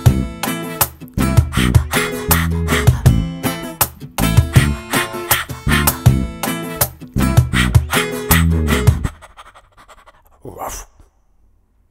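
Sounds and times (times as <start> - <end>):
dog panting: 1.6 - 3.2, 7.5 - 10.4.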